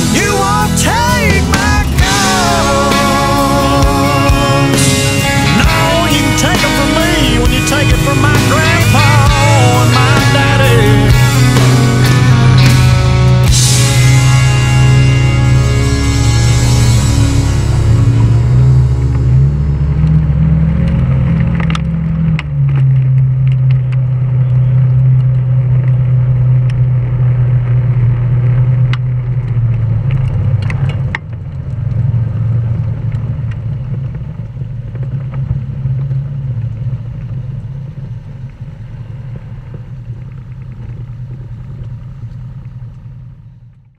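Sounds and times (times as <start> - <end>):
utility vehicle engine running: 0.0 - 43.9
gravel crunching under tyres: 4.4 - 43.9.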